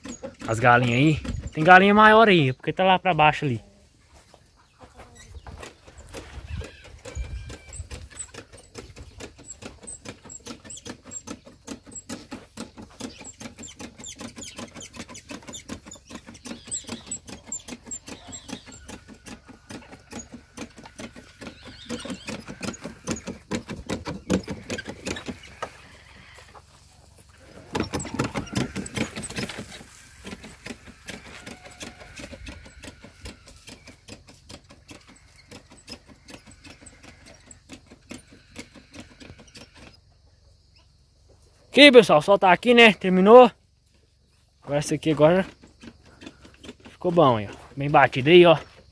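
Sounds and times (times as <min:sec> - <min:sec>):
squeaky pump clicks: 0:00.0 - 0:02.3, 0:05.2 - 0:25.8, 0:27.6 - 0:40.0.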